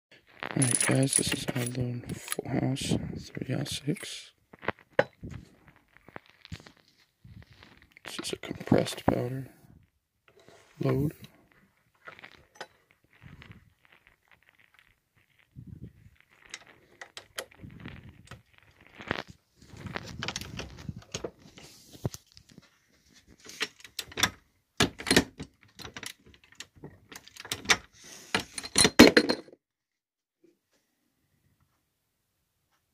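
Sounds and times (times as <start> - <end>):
metal cartridges clinking: 0.4 - 2.5.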